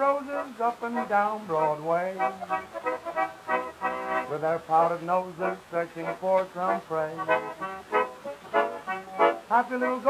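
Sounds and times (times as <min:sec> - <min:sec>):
person singing: 0:00.0 - 0:10.0
piano accordion chords: 0:00.0 - 0:10.0.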